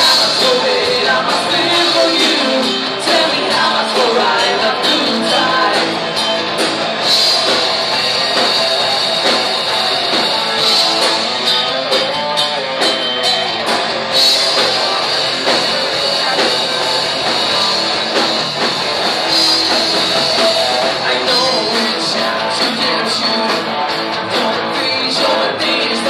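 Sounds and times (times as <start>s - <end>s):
drum kit beating: 0.0s - 26.0s
heavy metal band playing: 0.0s - 26.0s.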